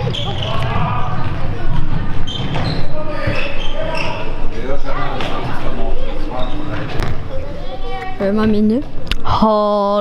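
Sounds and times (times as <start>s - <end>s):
ball bouncing on hall floor: 0.0s - 3.5s
girls' voices echoing: 7.2s - 10.0s.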